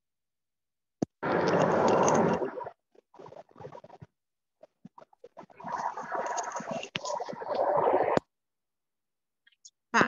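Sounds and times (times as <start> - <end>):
microphone noise rush: 5.4 - 8.2.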